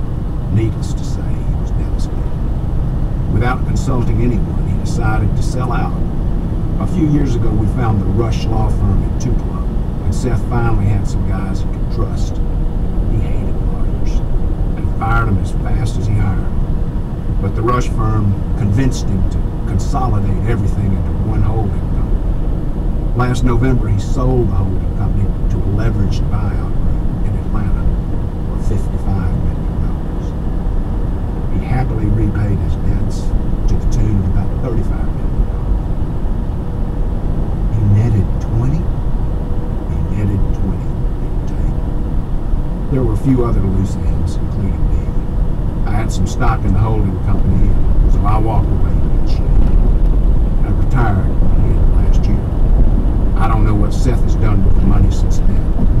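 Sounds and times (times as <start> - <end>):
vehicle cruising rumble: 0.0 - 56.0
person speaking: 0.5 - 2.3, 3.3 - 6.1, 6.8 - 12.4, 13.0 - 16.6, 17.4 - 22.2, 23.2 - 30.3, 31.5 - 35.5, 37.7 - 38.9, 39.9 - 41.8, 42.9 - 45.2, 45.8 - 49.9, 50.6 - 52.5, 53.3 - 55.8.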